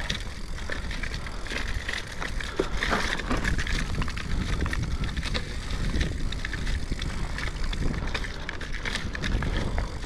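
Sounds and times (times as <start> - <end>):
bike rattling and clicking: 0.0 - 10.0
bike tyres on dirt: 0.0 - 10.0
wind on microphone: 0.0 - 10.0.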